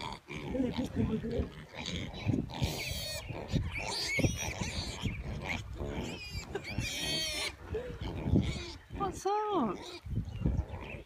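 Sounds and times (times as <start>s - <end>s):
piglets grunting: 0.0s - 11.0s
high-pitched piglet squeals: 1.5s - 8.9s, 9.7s - 11.0s.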